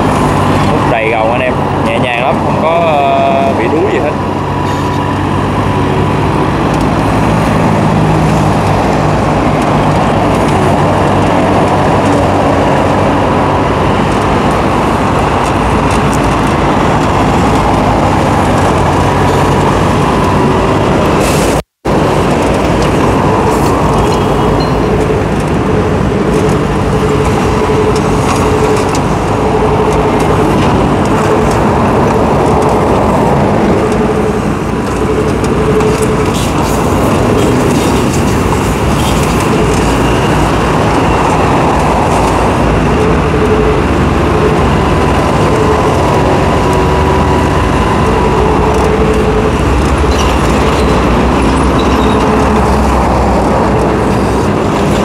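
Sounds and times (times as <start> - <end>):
excavator diesel engine running: 0.0 - 55.0.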